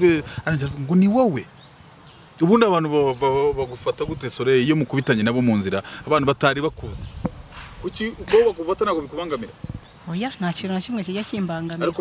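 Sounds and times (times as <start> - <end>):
woman's voice: 10.1 - 12.0.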